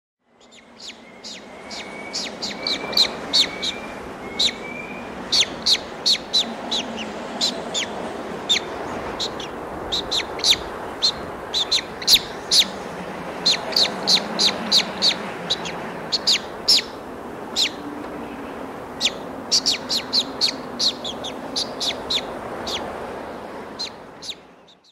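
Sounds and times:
eagle chick calling: 0.4s - 12.8s, 13.4s - 17.8s, 18.9s - 22.9s, 23.8s - 24.9s.

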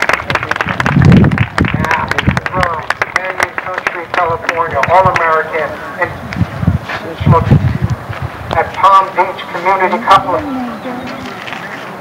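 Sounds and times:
spectators applauding: 0.0s - 5.3s.

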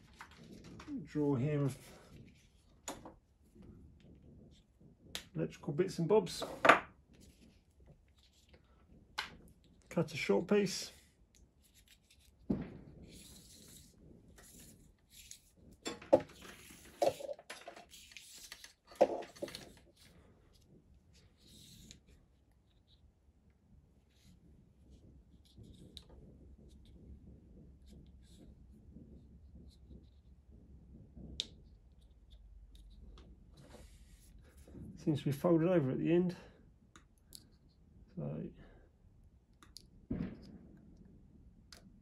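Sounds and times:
faint rustles of handling wire: 0.0s - 40.8s
small objects knocking and clattering: 15.8s - 20.1s.

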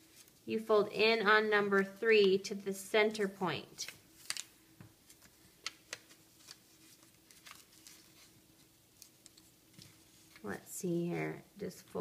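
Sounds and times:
paper being folded and creased: 3.8s - 4.5s, 5.1s - 10.5s.

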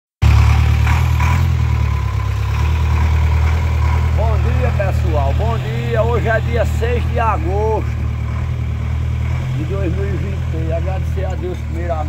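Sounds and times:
truck engine idling: 0.2s - 12.0s
voices: 3.5s - 12.0s.

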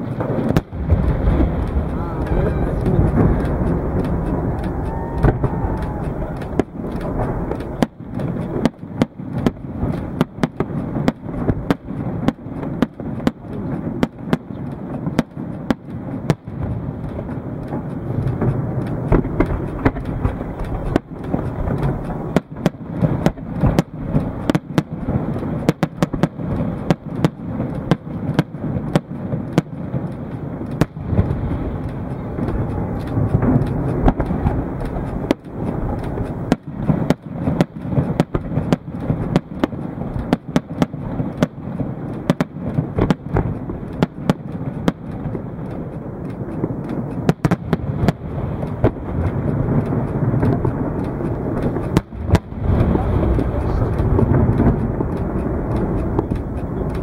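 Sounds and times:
low rumble: 0.0s - 14.9s, 29.4s - 37.1s, 41.0s - 57.0s
fireworks bangs and crackles: 0.0s - 57.0s.

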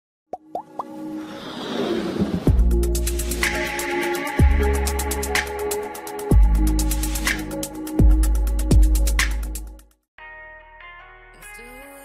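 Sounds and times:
rising plop sound effects: 0.3s - 1.0s
music riser: 0.8s - 8.0s.

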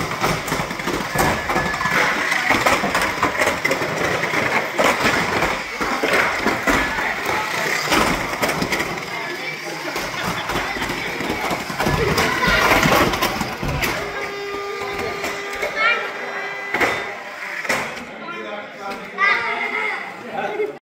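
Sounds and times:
chatter of adults and children: 0.0s - 20.8s.

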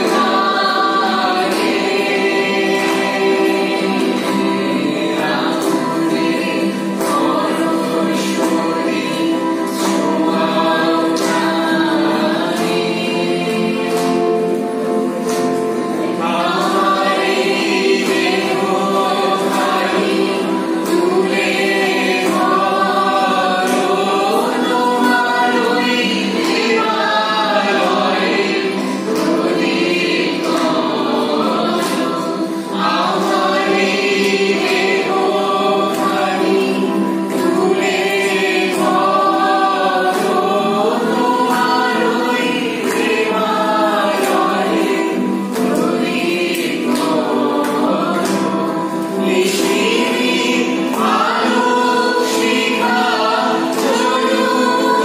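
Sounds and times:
group of voices singing: 0.0s - 55.0s
strummed acoustic guitars: 0.0s - 55.0s.

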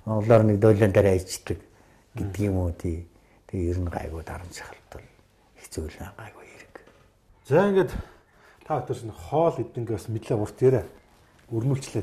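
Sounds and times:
men talking: 0.0s - 6.5s, 7.4s - 12.0s.

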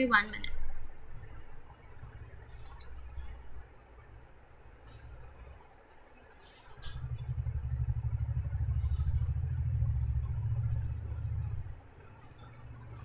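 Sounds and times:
low fluttering rumble: 6.8s - 13.0s.

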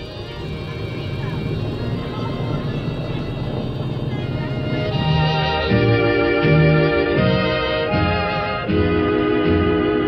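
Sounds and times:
faint music: 0.0s - 10.0s
radial aircraft engine running: 0.0s - 10.0s.

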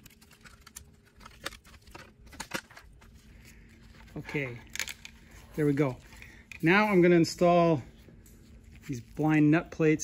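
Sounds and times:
faint clicks and handling noises: 0.0s - 9.5s.

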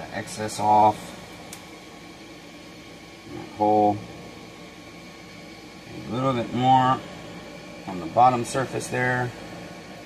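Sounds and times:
room hum: 0.0s - 10.0s.

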